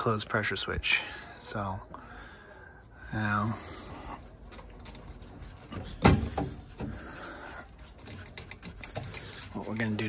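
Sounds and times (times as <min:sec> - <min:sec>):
small faint clicks and rustles: 0:06.8 - 0:10.0.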